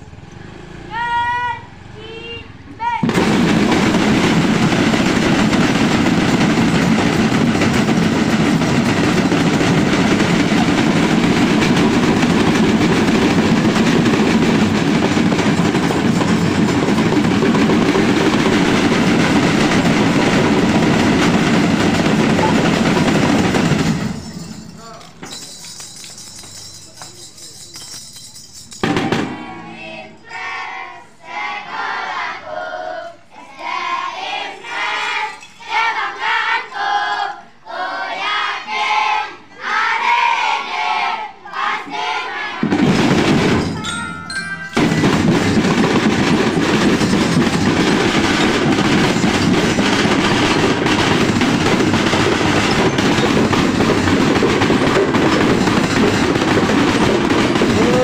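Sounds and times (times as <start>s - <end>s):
snare drum roll: 3.0s - 24.5s, 28.8s - 29.8s, 42.5s - 58.0s.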